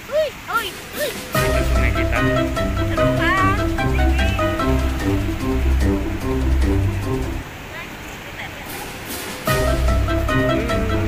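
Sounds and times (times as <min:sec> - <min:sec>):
faint voices: 0:00.0 - 0:05.3
river rapids rushing: 0:00.0 - 0:11.0
background music: 0:00.8 - 0:07.5, 0:09.4 - 0:11.0.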